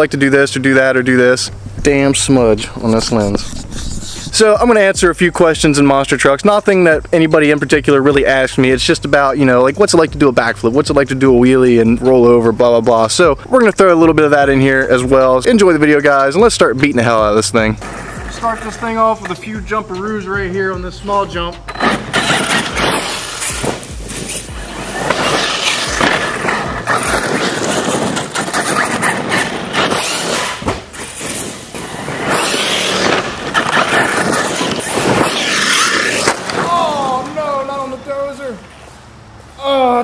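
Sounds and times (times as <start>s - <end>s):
tyres spraying gravel: 0.0s - 39.2s
electric motor whining: 21.8s - 36.6s.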